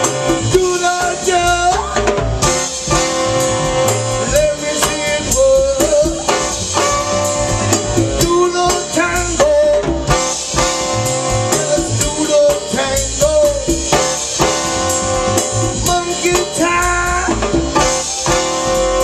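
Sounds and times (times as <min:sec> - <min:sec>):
live band playing soul music: 0:00.0 - 0:19.0.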